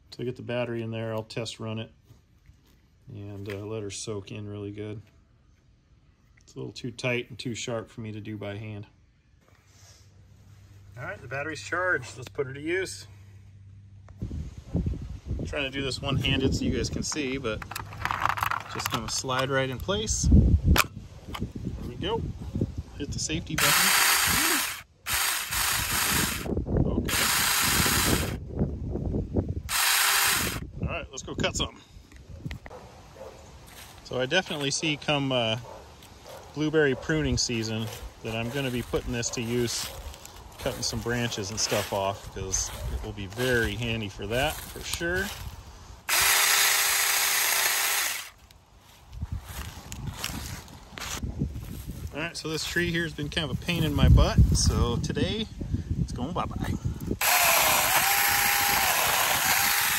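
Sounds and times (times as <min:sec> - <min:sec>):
electric chainsaw running: 0:23.6 - 0:26.5, 0:27.1 - 0:28.4, 0:29.7 - 0:30.6, 0:46.1 - 0:48.4, 0:57.2 - 0:59.9.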